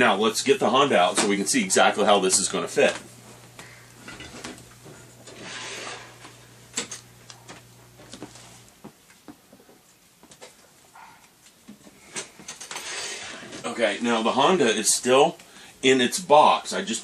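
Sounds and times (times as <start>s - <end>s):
objects moved on a shelf: 4.0s - 8.7s, 11.7s - 13.8s.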